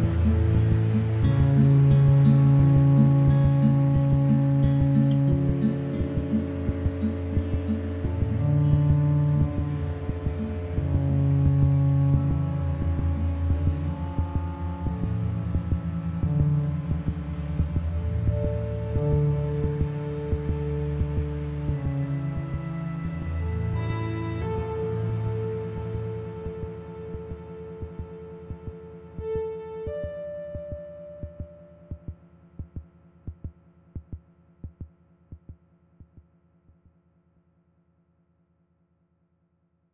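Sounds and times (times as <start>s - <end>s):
faint low hum: 0.0s - 36.9s
low held synthesizer bass tones: 0.0s - 37.2s
synthesized kick drum double hits: 31.2s - 36.3s.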